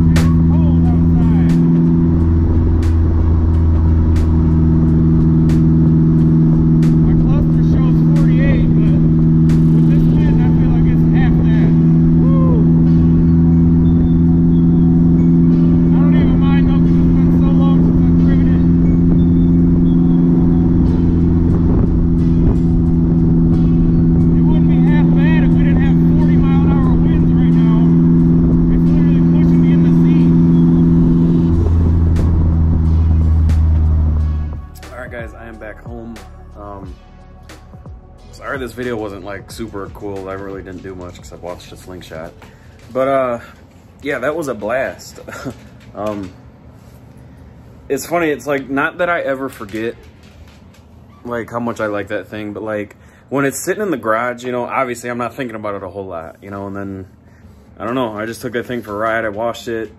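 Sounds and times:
vehicle engine cruising: 0:00.0 - 0:52.0.

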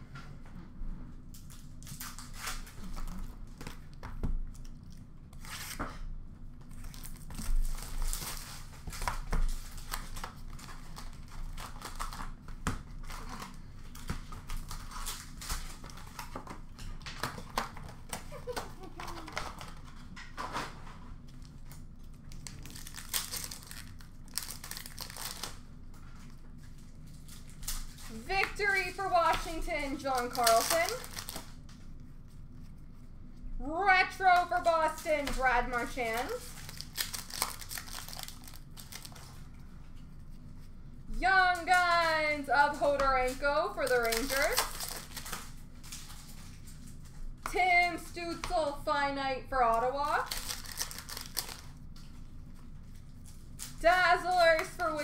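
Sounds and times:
card wrappers crinkling: 0:06.7 - 0:20.1, 0:21.2 - 0:31.8, 0:34.2 - 0:40.4, 0:42.8 - 0:47.1, 0:50.0 - 0:55.0.

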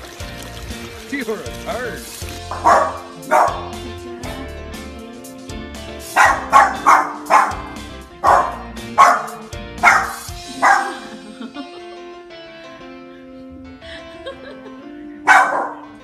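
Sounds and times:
background music: 0:00.0 - 0:16.0
dog barking: 0:02.5 - 0:03.7, 0:06.1 - 0:11.1, 0:15.2 - 0:16.0.

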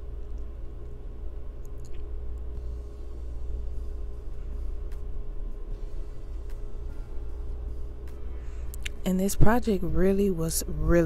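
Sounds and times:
low hum: 0:00.0 - 0:11.0
thin steady tone: 0:02.5 - 0:11.0.

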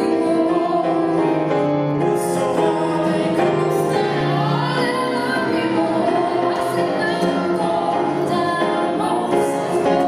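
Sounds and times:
woman singing harmony: 0:00.0 - 0:01.4, 0:02.2 - 0:10.0
woman singing lead: 0:00.0 - 0:01.5, 0:02.2 - 0:10.0.

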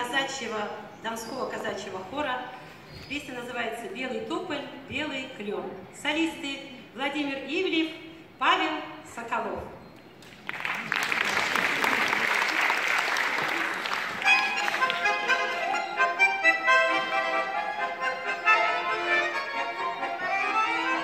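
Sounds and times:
audience applause: 0:10.3 - 0:15.6
accordions playing folk song: 0:14.0 - 0:21.0.

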